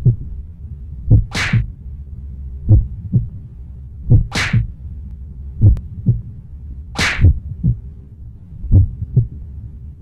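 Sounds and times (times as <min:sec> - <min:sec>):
low heartbeat-like thuds: 0:00.0 - 0:00.4, 0:01.1 - 0:01.7, 0:02.6 - 0:03.4, 0:04.1 - 0:04.8, 0:05.6 - 0:06.4, 0:07.0 - 0:08.0, 0:08.7 - 0:09.4
short sharp hiss: 0:01.3 - 0:01.6.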